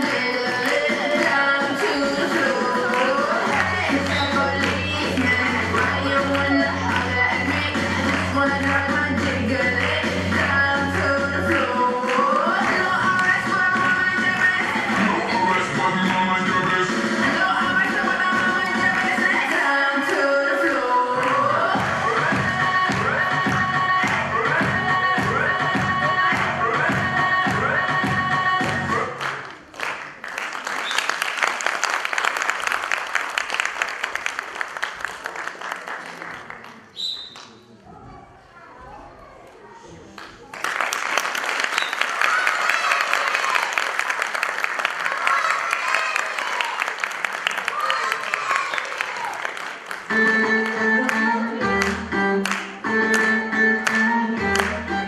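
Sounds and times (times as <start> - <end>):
dance music with steady beat: 0.0 - 29.2
voices among clapping: 0.5 - 11.0, 28.6 - 37.8, 39.4 - 50.1
audience applauding: 28.9 - 36.9, 40.2 - 51.2.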